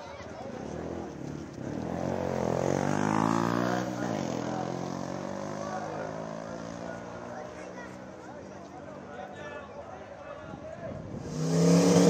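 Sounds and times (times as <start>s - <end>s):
race car engine revving: 11.2s - 12.0s.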